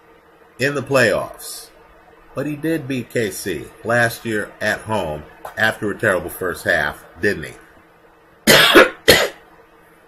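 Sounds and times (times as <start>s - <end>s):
man coughing: 8.5s - 9.4s.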